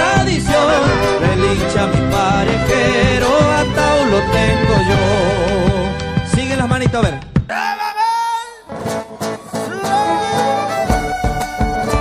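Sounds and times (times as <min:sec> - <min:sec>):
strummed guitar: 0:00.0 - 0:07.2, 0:08.7 - 0:12.0
folk music: 0:00.0 - 0:07.5, 0:08.7 - 0:12.0.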